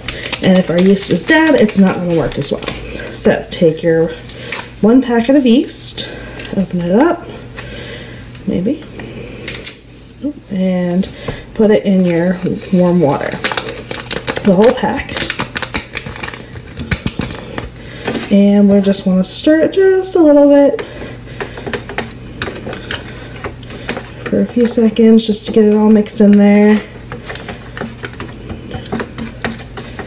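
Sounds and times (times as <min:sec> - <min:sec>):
paper packet crinkling: 0:00.0 - 0:04.8, 0:11.9 - 0:18.3.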